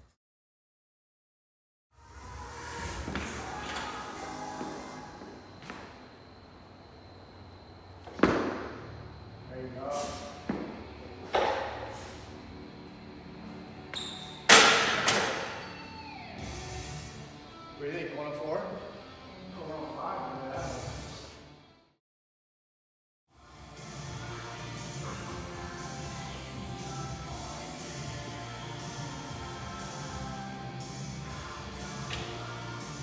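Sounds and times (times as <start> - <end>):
background music: 2.0 - 5.5, 23.4 - 33.0.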